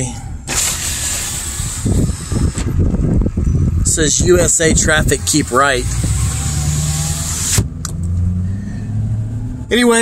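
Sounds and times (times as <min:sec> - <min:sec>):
low hum of engine and tyres: 0:00.0 - 0:10.0
wind and road noise rushing: 0:00.0 - 0:10.0
power window shutting: 0:00.5 - 0:02.7, 0:05.4 - 0:07.7.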